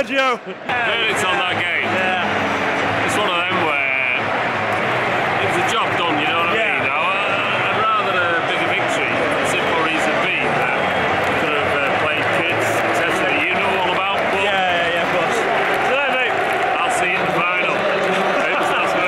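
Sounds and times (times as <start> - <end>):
men talking: 0.0 - 19.0.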